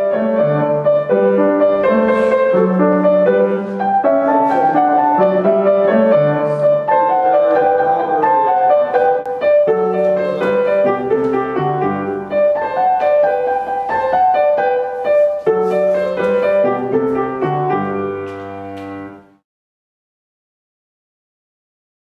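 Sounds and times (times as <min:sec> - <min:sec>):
solo grand piano piece: 0:00.0 - 0:19.4.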